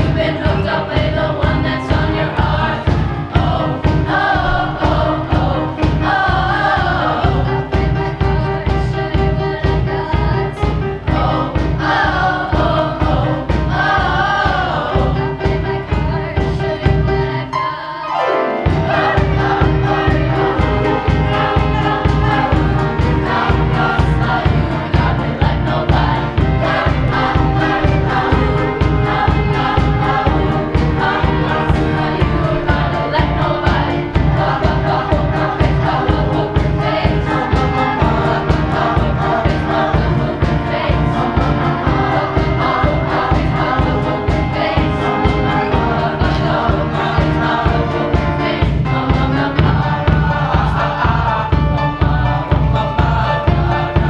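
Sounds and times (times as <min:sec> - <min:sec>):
loud accompaniment with driving beat: 0:00.0 - 0:17.5, 0:18.6 - 0:54.0
choir singing: 0:00.0 - 0:54.0.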